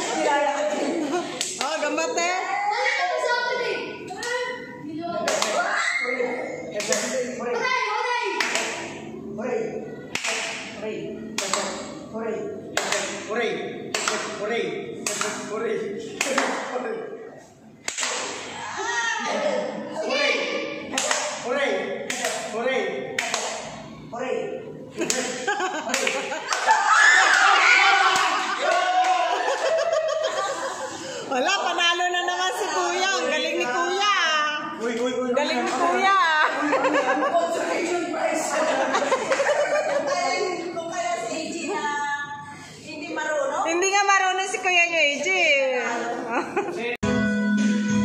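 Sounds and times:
people talking: 31.3 - 42.3.

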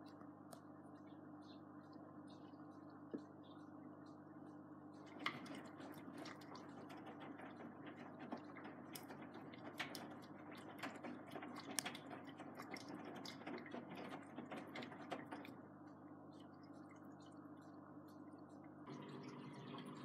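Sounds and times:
washing machine motor hum: 0.0 - 20.0.

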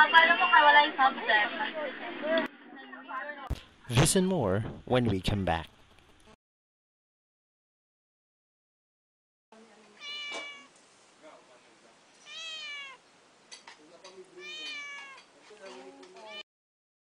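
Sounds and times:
cat meowing: 9.9 - 10.8, 12.2 - 13.1, 14.3 - 15.3, 16.2 - 16.4.

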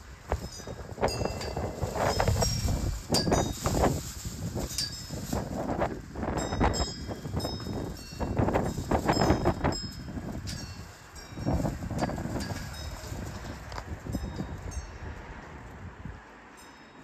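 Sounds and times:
flag flapping: 0.0 - 14.1
wind buffeting microphone: 0.0 - 16.3.

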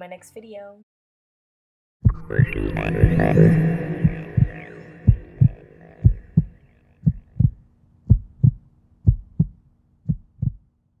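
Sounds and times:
heartbeat thumps: 2.0 - 10.6.

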